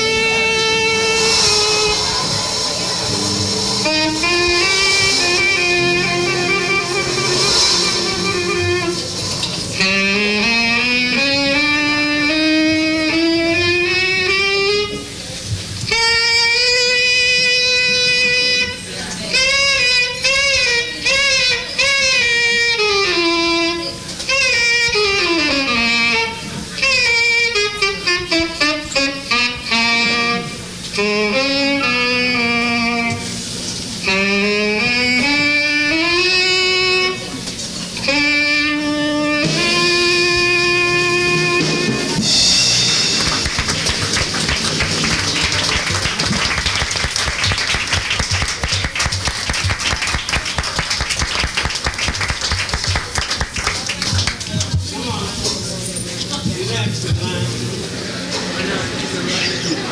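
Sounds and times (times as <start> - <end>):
tenor saxophone cadenza: 0.0 - 54.4
audience applause: 42.8 - 54.8.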